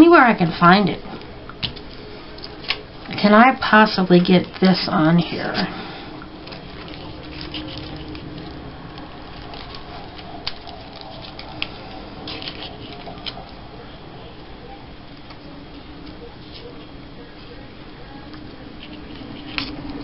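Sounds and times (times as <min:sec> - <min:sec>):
paper rustling and crinkling: 0:01.6 - 0:14.3, 0:17.5 - 0:20.0.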